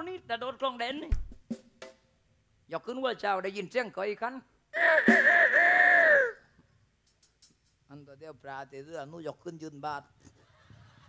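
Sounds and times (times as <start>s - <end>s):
rooster crowing: 4.8s - 6.4s.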